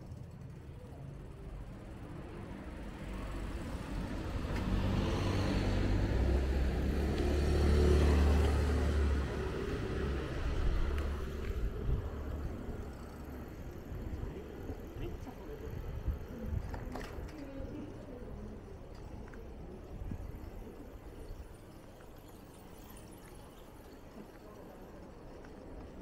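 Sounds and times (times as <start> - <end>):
car passing by: 3.0 - 13.3.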